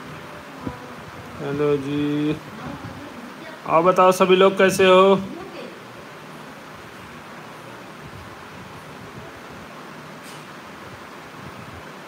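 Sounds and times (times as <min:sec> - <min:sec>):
man speaking: 0:01.4 - 0:02.5, 0:03.6 - 0:05.3.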